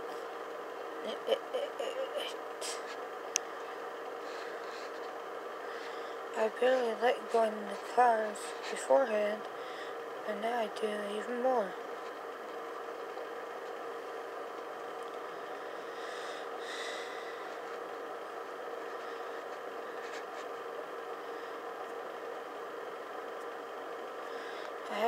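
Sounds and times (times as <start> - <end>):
mechanical hum with held tone: 0.0 - 25.0.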